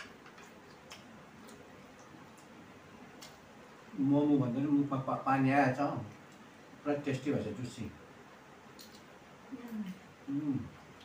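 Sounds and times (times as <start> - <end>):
people chewing: 0.3 - 3.4.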